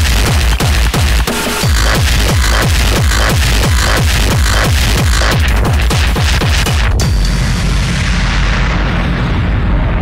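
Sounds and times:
rumbling bass boom: 1.7s - 10.0s.

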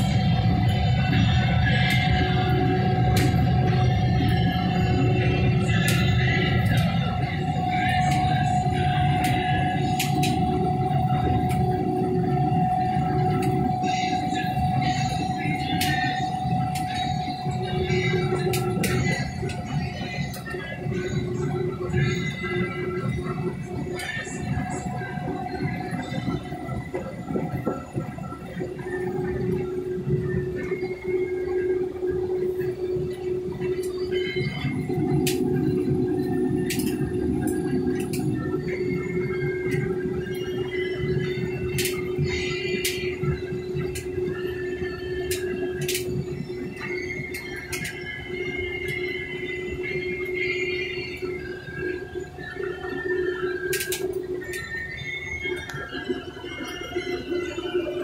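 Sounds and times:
combine harvester drone: 0.0s - 58.0s
steady hum: 0.0s - 58.0s.

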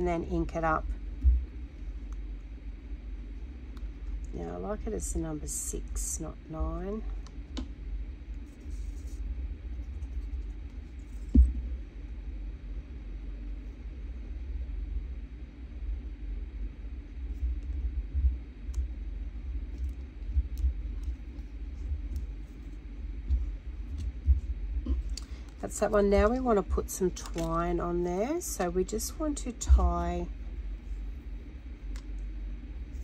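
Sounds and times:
steady low rumble: 0.0s - 33.0s.

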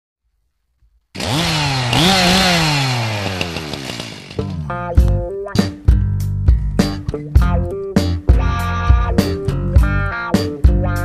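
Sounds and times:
chainsaw revving: 1.2s - 5.0s.

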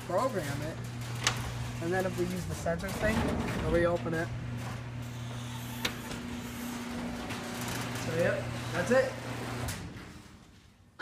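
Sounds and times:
garage door opener motor humming: 0.0s - 10.6s.

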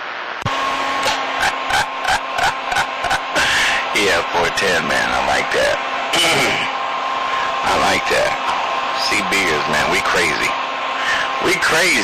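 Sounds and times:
hum-like radio tone: 0.0s - 12.0s
choppy garbled radio noise: 1.0s - 12.0s
radio static hiss: 1.1s - 8.4s, 9.0s - 12.0s.

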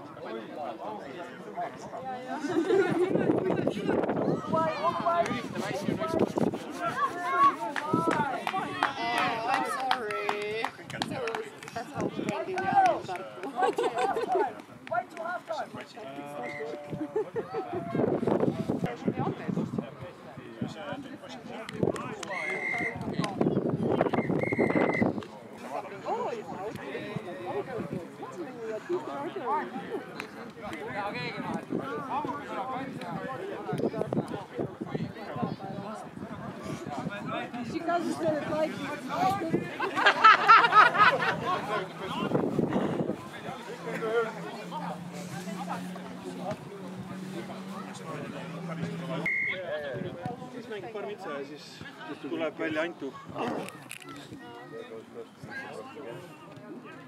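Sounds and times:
men talking: 0.0s - 24.1s, 25.0s - 57.0s
referee's whistle blasts: 24.0s - 25.1s, 49.3s - 49.7s
short high beep: 49.2s - 49.6s.

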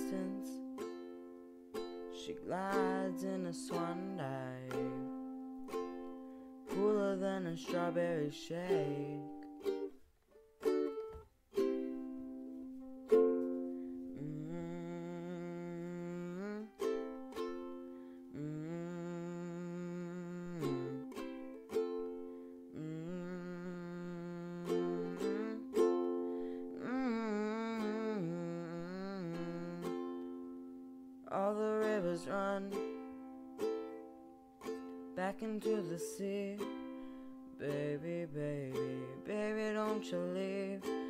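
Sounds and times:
person humming: 0.0s - 0.7s, 2.1s - 5.2s, 6.7s - 9.9s, 13.8s - 30.4s, 31.3s - 34.1s, 35.2s - 41.0s
ukulele strumming and plucking: 0.0s - 41.0s.

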